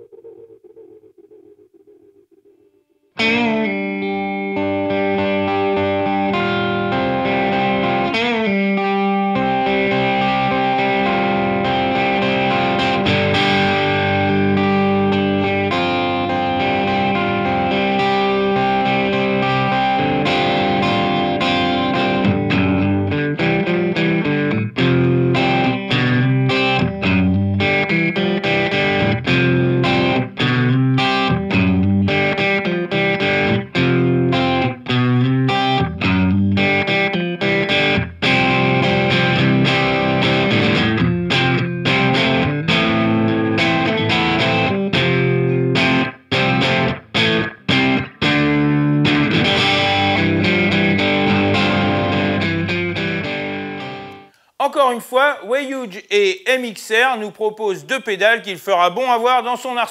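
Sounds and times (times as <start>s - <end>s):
overdriven electric guitar: 0.0s - 54.6s.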